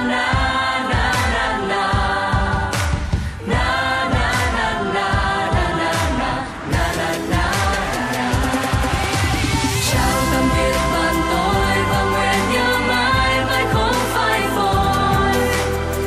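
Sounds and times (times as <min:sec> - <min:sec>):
pop song with vocals: 0:00.0 - 0:16.0.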